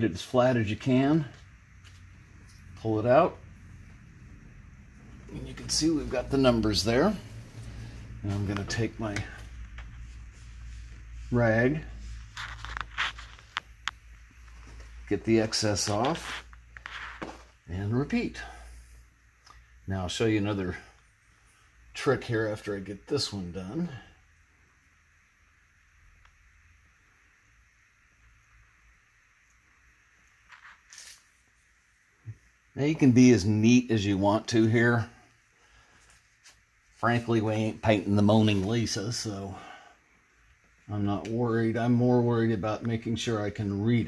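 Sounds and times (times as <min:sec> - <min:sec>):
faint rustling: 0:01.2 - 0:19.8.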